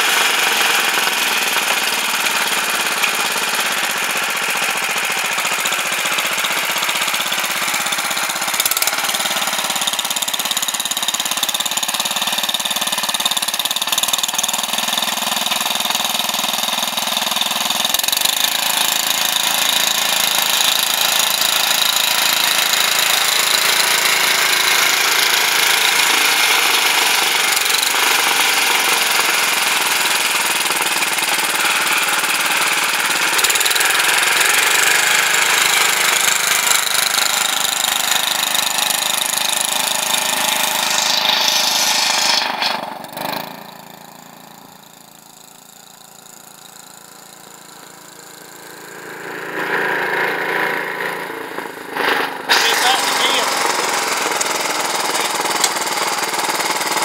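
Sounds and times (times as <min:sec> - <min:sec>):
garden tractor engine running: 0:00.0 - 0:57.0.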